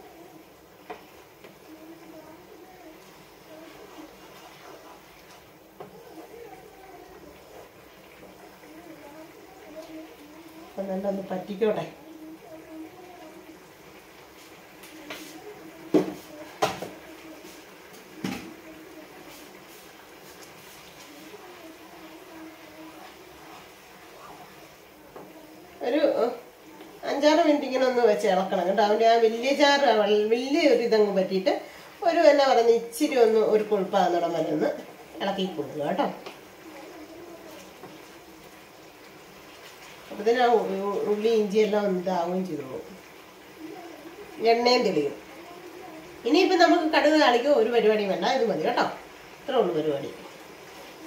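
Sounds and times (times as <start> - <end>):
spatula stirring: 0.0 - 25.6
faint steady hum: 0.0 - 51.0
sauce bubbling in a frying pan: 0.0 - 51.0.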